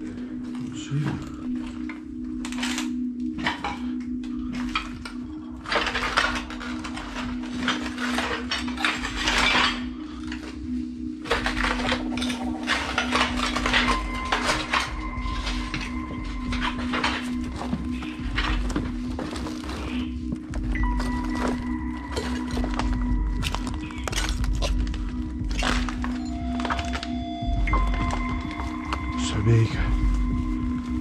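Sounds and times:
low steady drone: 0.0 - 31.0
footsteps crunching on broken tiles: 0.3 - 31.0.

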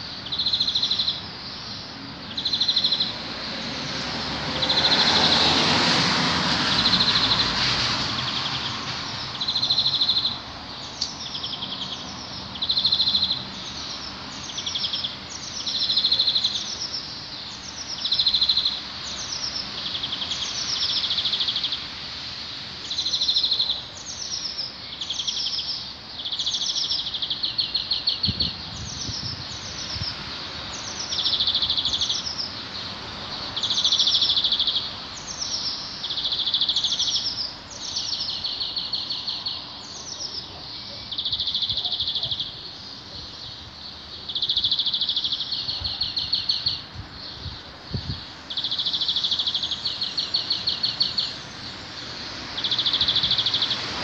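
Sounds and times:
songbird singing: 0.0 - 54.0.

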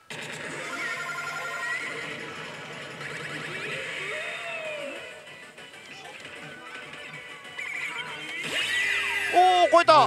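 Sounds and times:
slot machine electronic effects and music: 0.1 - 10.0.

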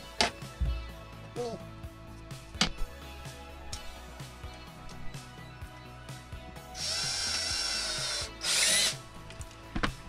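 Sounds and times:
cordless drill motor running: 6.8 - 9.0.

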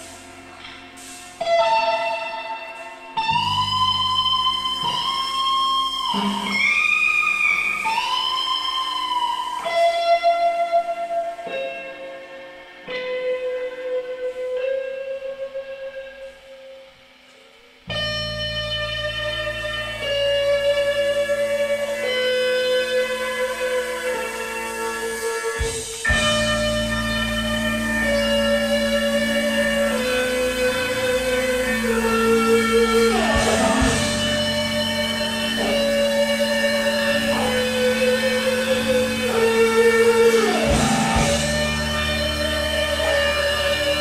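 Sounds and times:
electric guitar sustained notes: 0.0 - 44.0
keyboard and bass chord: 3.3 - 5.8, 22.8 - 44.0.

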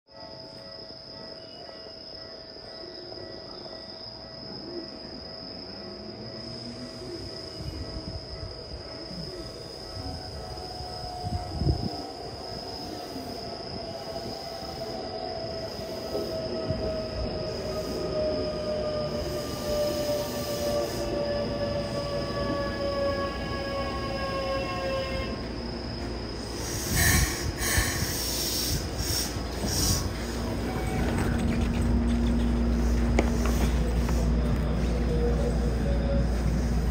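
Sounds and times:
wheel and rail rumble: 25.4 - 36.9
train inverter tones falling in pitch: 28.7 - 36.9.

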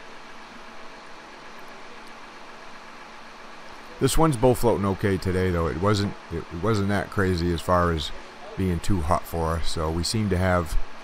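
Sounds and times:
faint engine hum: 0.0 - 11.0.

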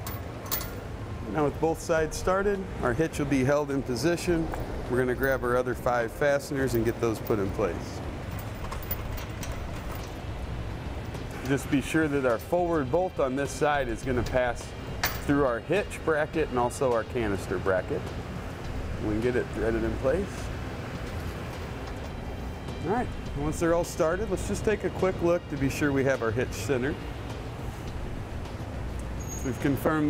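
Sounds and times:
metal hardware clicks: 0.0 - 0.8, 8.2 - 10.3, 15.0 - 15.4
steady low hum: 0.0 - 30.0.

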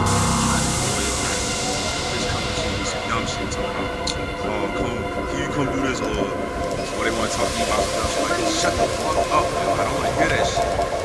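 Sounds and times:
droning synth: 0.0 - 11.0
low pulsing beat: 0.0 - 11.0
voice sample fragments: 0.0 - 11.0.

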